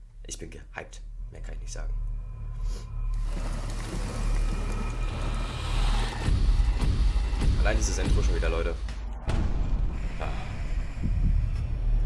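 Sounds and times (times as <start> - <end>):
deep low rumble: 1.1 - 12.0
wash of noise: 3.1 - 7.3.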